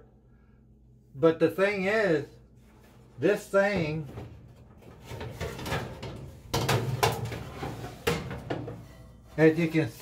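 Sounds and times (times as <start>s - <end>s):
sheet metal knocking and rattling: 3.7s - 9.1s.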